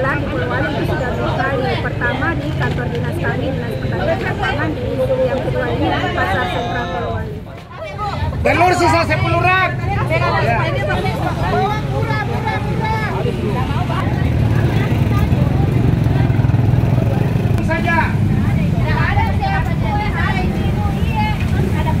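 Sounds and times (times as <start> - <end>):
low rumble of traffic: 0.0 - 22.0
people chattering: 0.0 - 22.0.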